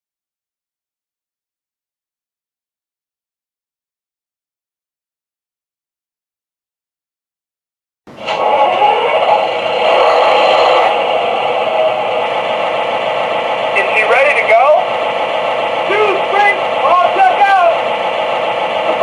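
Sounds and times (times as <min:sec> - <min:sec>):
recorded crew voices: 0:08.3 - 0:17.9
diesel idle through small speaker: 0:13.6 - 0:19.0.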